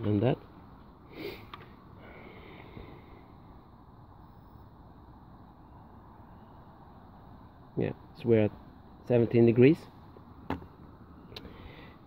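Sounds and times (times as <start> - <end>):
quiet background hiss: 0.0 - 12.0.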